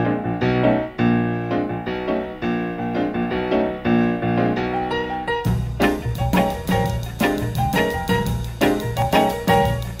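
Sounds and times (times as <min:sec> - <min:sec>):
jazz piano: 0:00.0 - 0:10.0.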